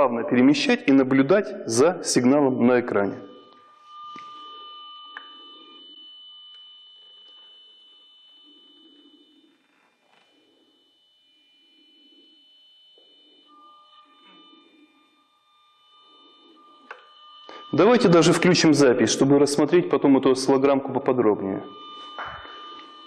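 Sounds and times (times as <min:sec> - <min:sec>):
faint high-pitched electronic whine: 0:00.0 - 0:23.0.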